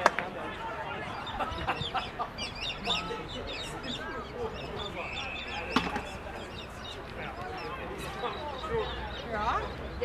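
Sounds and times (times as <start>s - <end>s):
distant spectator chatter: 0.0s - 10.0s
whistle blast: 5.0s - 6.2s.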